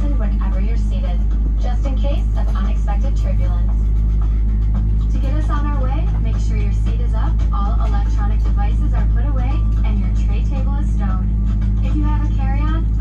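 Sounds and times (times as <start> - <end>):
voice over cabin speakers: 0.0 - 4.0, 5.0 - 13.0
airplane cabin drone: 0.0 - 13.0.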